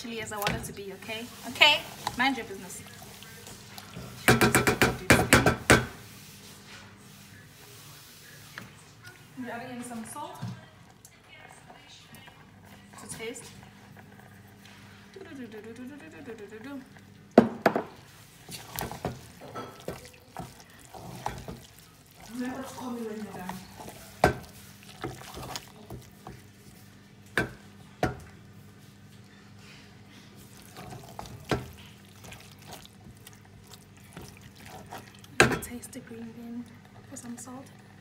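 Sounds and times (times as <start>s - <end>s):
spoon knocking against metal pot: 4.3s - 6.0s
spoon scraping in a pot: 18.2s - 26.8s.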